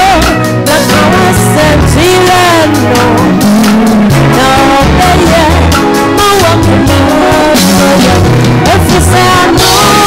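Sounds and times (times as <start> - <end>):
live band playing: 0.0 - 10.0
woman singing into microphone: 0.0 - 10.0.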